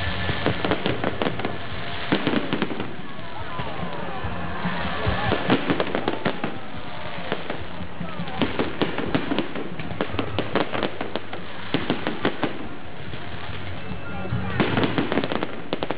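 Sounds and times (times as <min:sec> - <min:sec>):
fireworks crackling and popping: 0:00.0 - 0:15.9.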